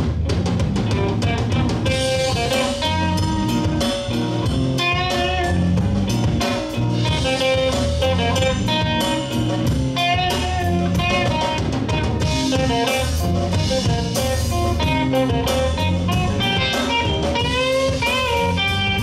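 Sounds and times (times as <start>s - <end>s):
blues band playing: 0.0s - 19.0s
lead guitar bending notes: 0.0s - 19.0s.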